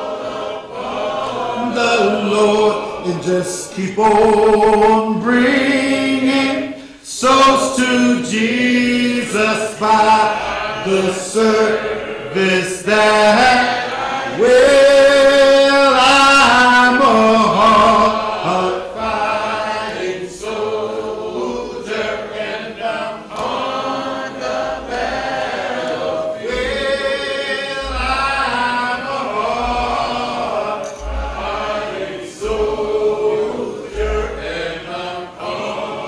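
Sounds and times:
choir singing gospel: 0.0s - 36.0s.

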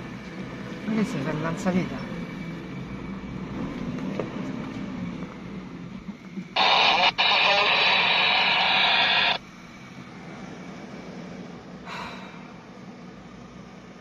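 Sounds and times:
engine and cabin rumble: 3.5s - 14.0s
crackly radio transmission hiss: 6.6s - 9.4s.

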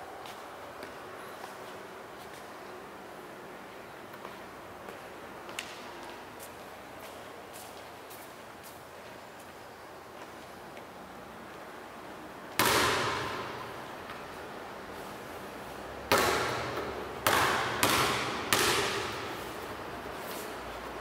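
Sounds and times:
basketball bouncing on tiled floor: 12.6s - 13.5s, 16.1s - 19.3s.

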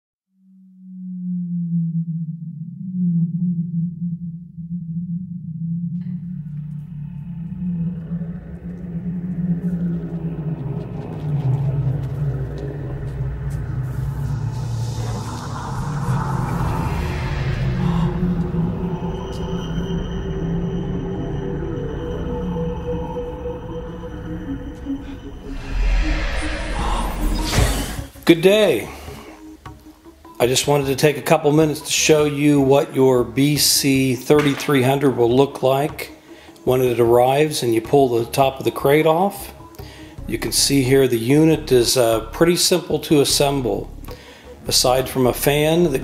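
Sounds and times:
low sustained music drone: 0.6s - 46.0s.

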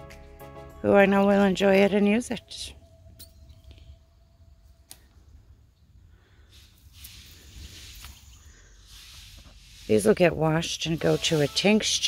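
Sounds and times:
soft hissing rustle: 6.0s - 12.0s.

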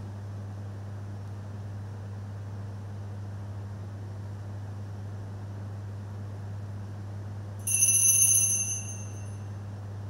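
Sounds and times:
low electrical hum: 0.0s - 10.0s
altar bell ringing: 7.6s - 9.5s.

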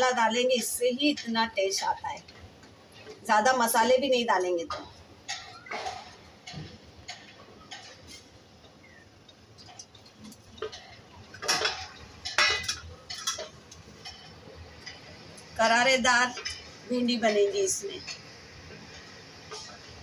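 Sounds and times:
utensils clattering: 4.5s - 20.0s
steel utensils clinking: 4.7s - 18.3s.

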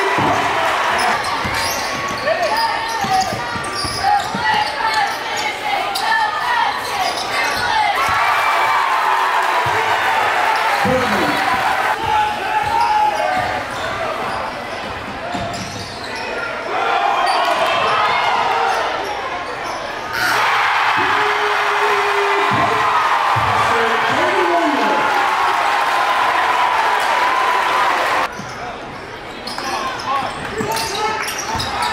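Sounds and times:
crowd cheering: 0.0s - 15.0s, 16.6s - 19.2s, 20.1s - 28.3s
crowd chatter: 0.0s - 25.4s.

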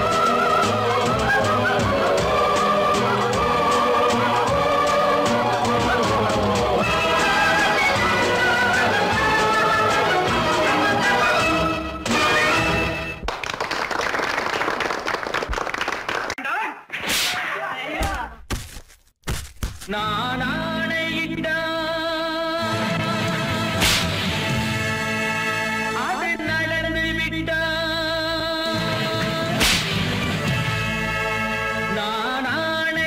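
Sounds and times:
music track: 0.0s - 13.2s
old film song: 0.0s - 13.2s, 19.9s - 33.0s
sharp smacks: 17.0s - 17.4s, 23.8s - 24.2s, 29.6s - 30.1s
sharp crack with hiss: 23.8s - 24.2s, 29.6s - 30.1s.

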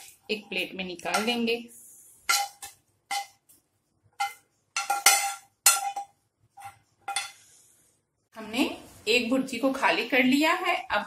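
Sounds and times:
metal spoon clinking on pan: 1.0s - 1.5s, 2.3s - 3.4s, 4.2s - 7.4s.

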